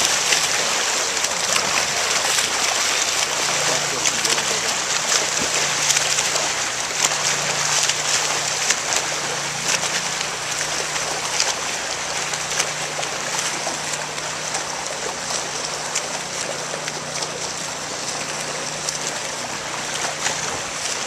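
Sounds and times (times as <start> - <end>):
churning water: 0.0 - 21.0
swimmers splashing in pool: 0.0 - 21.0.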